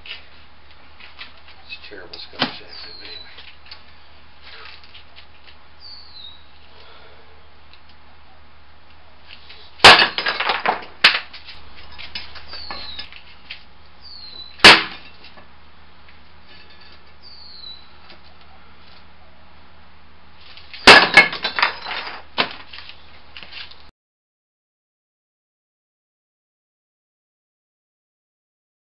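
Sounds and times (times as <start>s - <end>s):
concrete slab cracking: 9.8s - 13.0s, 20.8s - 22.8s
concrete fragments clattering: 9.8s - 13.2s, 16.5s - 17.2s, 20.8s - 22.3s.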